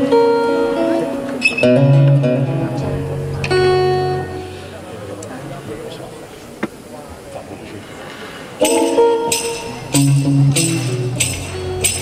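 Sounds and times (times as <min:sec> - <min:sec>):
acoustic guitars chord: 0:00.0 - 0:05.0, 0:08.6 - 0:12.0
tambourine jingling: 0:08.6 - 0:12.0.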